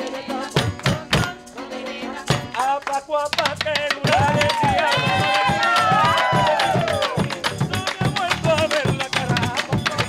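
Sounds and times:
group singing: 0.0s - 3.3s, 3.9s - 9.9s
percussion beat: 0.0s - 10.0s
hand claps: 2.6s - 10.0s.

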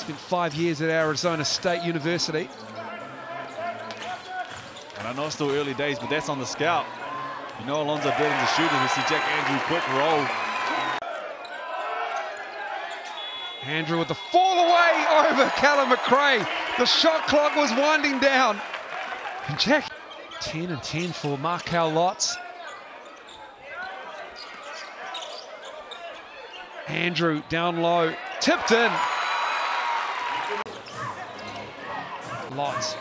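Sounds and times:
voices in arena: 0.0s - 33.0s.

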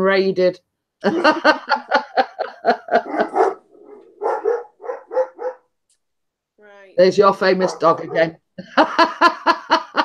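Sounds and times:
dog barking: 3.0s - 5.7s, 7.6s - 8.4s.

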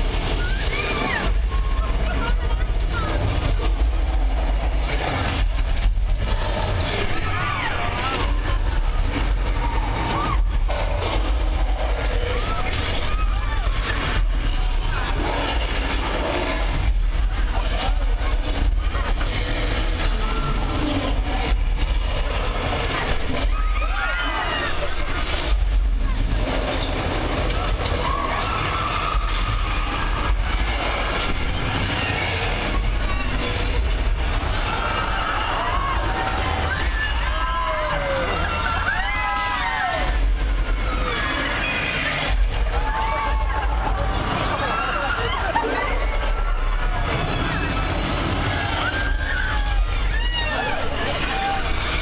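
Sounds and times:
crashes: 0.0s - 52.0s
deep ride rumble: 0.0s - 52.0s.

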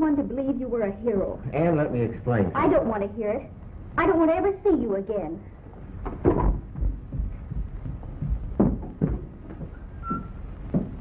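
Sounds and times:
heeled footsteps on floor: 6.1s - 11.0s.

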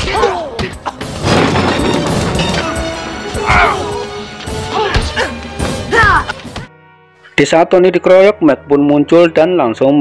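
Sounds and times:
pained shouts: 0.0s - 0.6s, 3.4s - 4.1s, 4.7s - 6.2s
tense background music: 0.0s - 9.8s.

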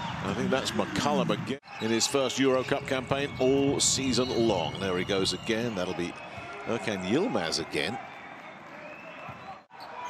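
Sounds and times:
arena crowd hum: 0.0s - 10.0s
basketball game sounds: 0.0s - 10.0s.

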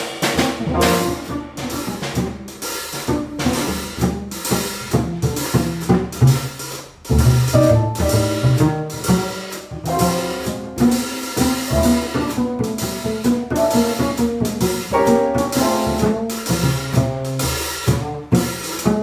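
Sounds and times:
acoustic piano: 0.0s - 1.5s, 7.5s - 16.4s
drum kit snare and cymbals: 0.0s - 19.0s
plucked upright bass: 7.1s - 19.0s.

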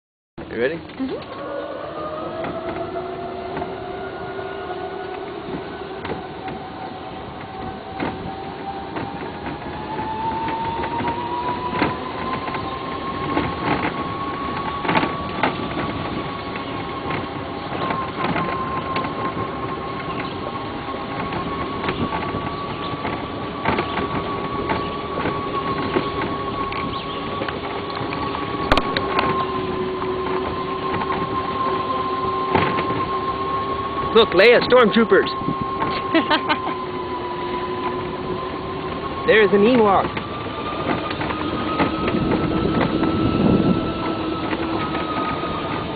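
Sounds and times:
atv engine running: 0.5s - 45.9s
scattered knocks: 32.4s - 33.4s.

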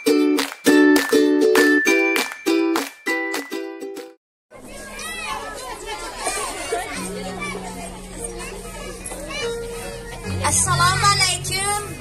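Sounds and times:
children chattering and calling out: 4.5s - 12.0s
low steady music tone: 7.0s - 12.0s.

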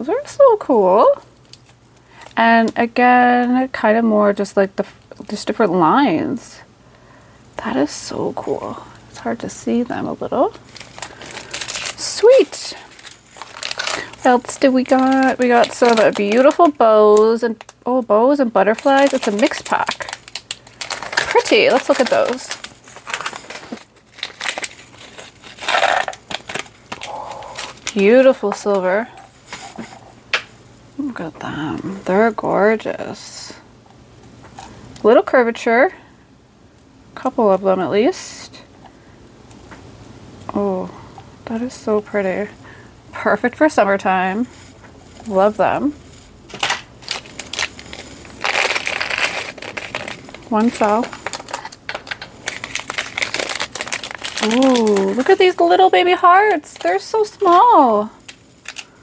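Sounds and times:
plastic bag crinkling: 10.3s - 29.9s, 44.4s - 59.0s.

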